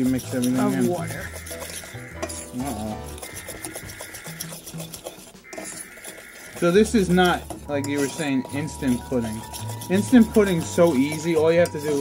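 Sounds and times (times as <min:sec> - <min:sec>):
background music: 0:00.0 - 0:12.0
spoon scraping saucepan: 0:00.0 - 0:12.0.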